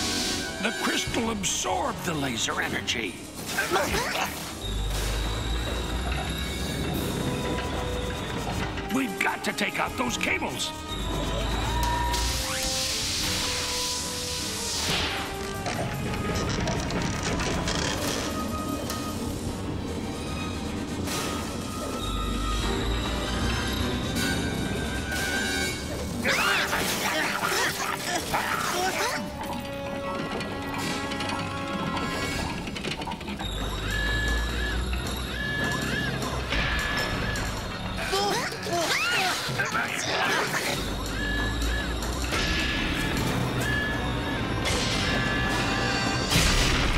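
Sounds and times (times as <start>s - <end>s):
cartoon background music: 0.0s - 46.9s.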